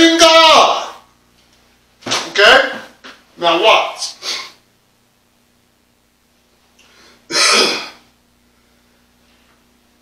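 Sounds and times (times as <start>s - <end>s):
man clearing his throat: 7.3s - 8.1s.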